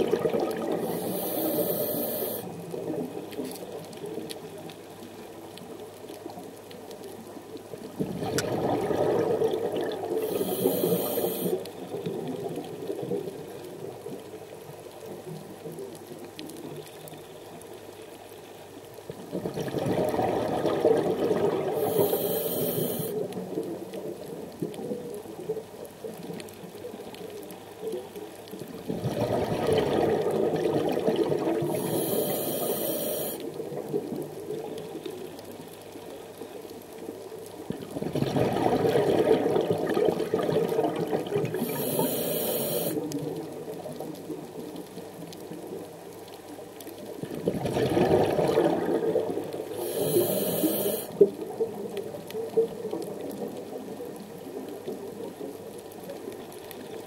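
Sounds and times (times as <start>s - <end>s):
exhaled bubbles underwater: 0.0s - 4.6s, 7.6s - 16.8s, 19.1s - 27.0s, 27.9s - 35.2s, 37.1s - 46.2s, 47.0s - 57.0s
regulator hiss: 0.8s - 2.5s, 10.2s - 11.6s, 21.8s - 23.2s, 31.7s - 33.4s, 41.6s - 43.1s, 49.7s - 51.2s.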